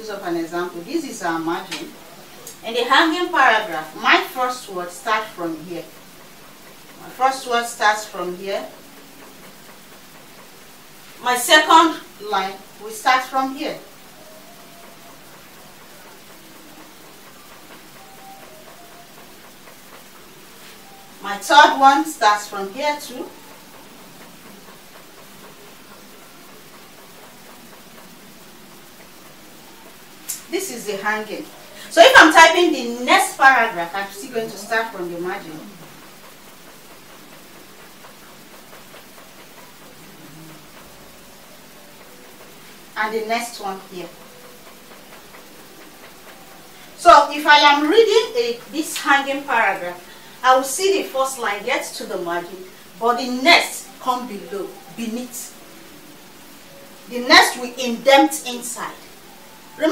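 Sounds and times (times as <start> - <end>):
room noise hiss: 0.0 - 59.9.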